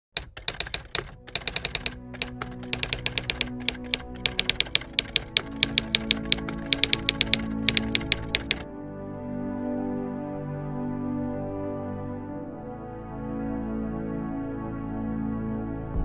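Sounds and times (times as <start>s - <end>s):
typewriter clacking: 0.0s - 8.6s
background music: 0.2s - 16.0s.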